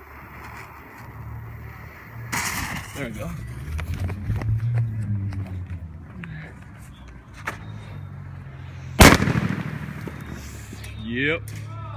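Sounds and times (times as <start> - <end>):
firework bang: 9.0 - 10.6.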